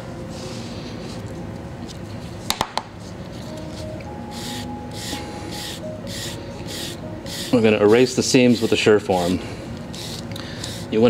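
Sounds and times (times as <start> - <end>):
rasp scraping clay: 4.4 - 8.9.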